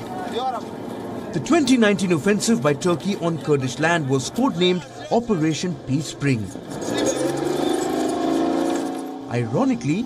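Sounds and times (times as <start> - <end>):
tracked vehicle engine running: 0.0 - 4.6.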